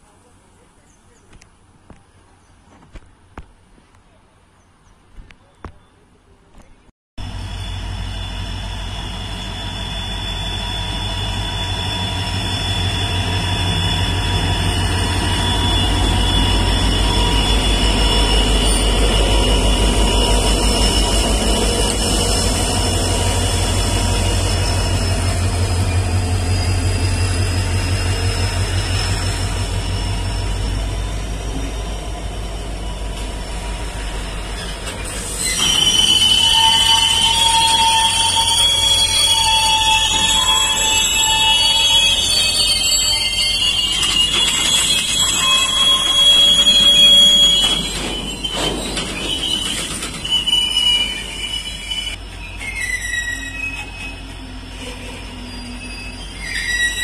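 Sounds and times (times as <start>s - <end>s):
diesel locomotive engine drone: 7.2s - 57.0s
high thin squeal: 7.3s - 33.4s, 34.4s - 57.0s
wagons rolling past: 43.7s - 52.0s.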